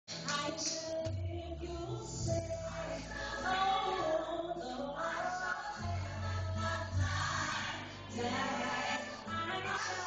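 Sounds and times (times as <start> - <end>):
gospel choir singing: 2.2 - 10.0.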